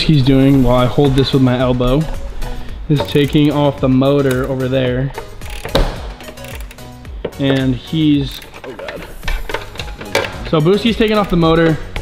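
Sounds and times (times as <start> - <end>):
background music: 0.0 - 12.0
ratchet wrench clicking: 3.0 - 3.6, 4.2 - 4.6, 5.2 - 11.6.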